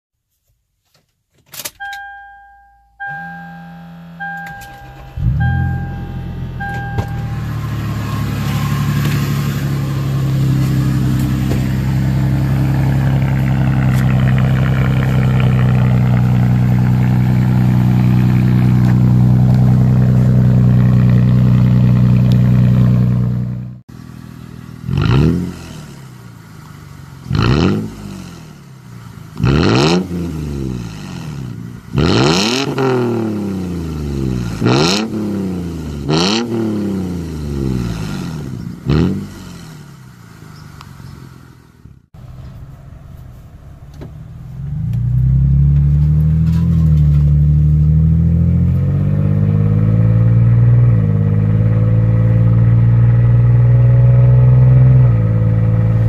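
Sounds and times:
car engine cranking and starting: 1.3s - 56.0s
dashboard warning chime beeping: 1.7s - 9.1s
engine revving in short blips: 3.0s - 23.8s
car engine idling loudly: 4.4s - 29.4s.

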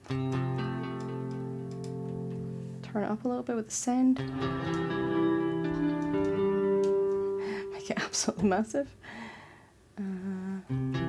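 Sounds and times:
ambient electric guitar pad: 4.2s - 7.9s, 10.7s - 11.0s.

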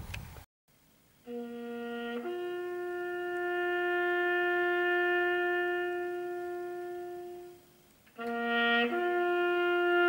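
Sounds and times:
slow wind instrument melody: 1.2s - 10.0s.

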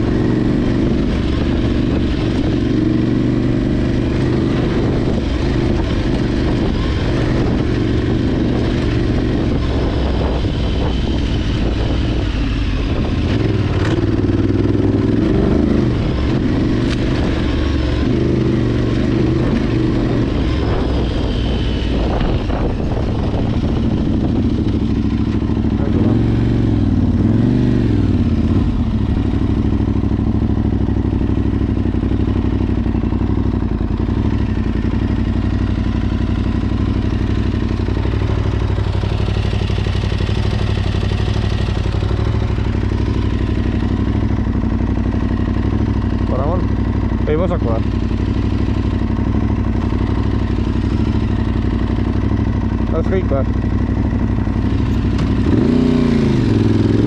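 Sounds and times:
wind noise: 0.0s - 29.5s
motorcycle engine running: 0.0s - 57.0s.

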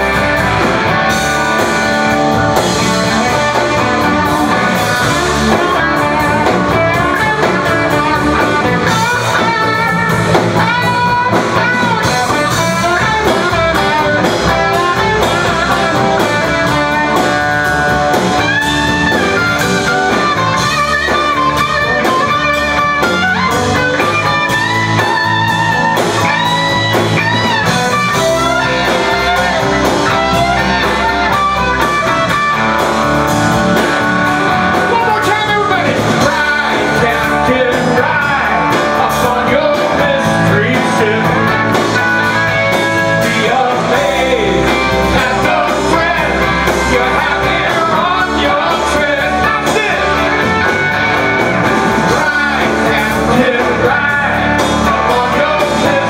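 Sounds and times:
bass guitar: 0.0s - 56.0s
drum kit: 0.0s - 56.0s
electric guitar lead lines: 0.0s - 56.0s.

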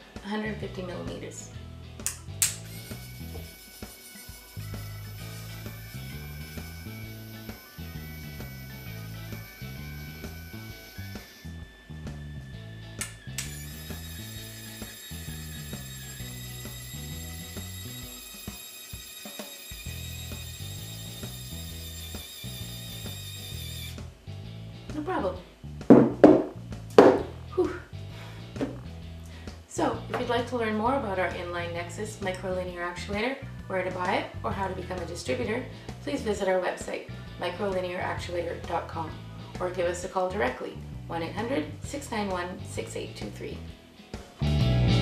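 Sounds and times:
background music with bass line: 0.0s - 3.6s, 4.6s - 14.2s, 23.0s - 36.3s, 40.8s - 45.0s
linear actuator motor whining: 2.6s - 24.1s.

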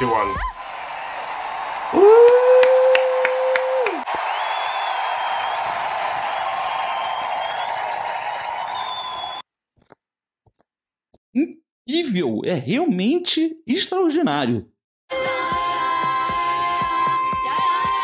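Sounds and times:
crowd cheering and screaming: 0.0s - 9.4s.

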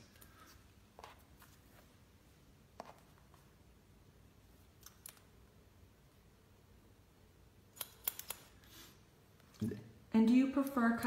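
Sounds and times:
scissors snipping hair: 7.8s - 8.6s.

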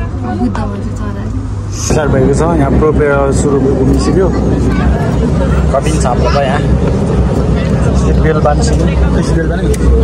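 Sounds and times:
aircraft engines droning: 0.0s - 10.0s
voices: 0.0s - 10.0s.

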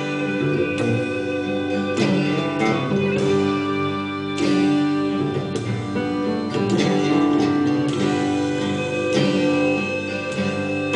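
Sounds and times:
acoustic guitar strumming: 0.0s - 10.9s.

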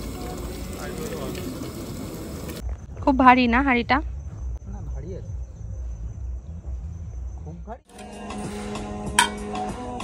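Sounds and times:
water trickling into pot: 0.0s - 2.6s.

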